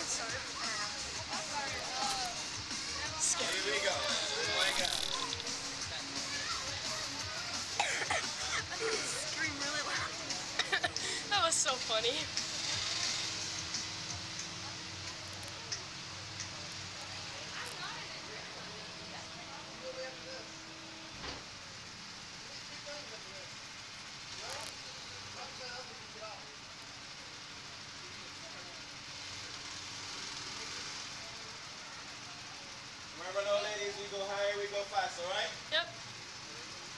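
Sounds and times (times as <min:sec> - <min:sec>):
faint distant voices: 0:00.0 - 0:36.9
steady background hiss: 0:00.0 - 0:36.9.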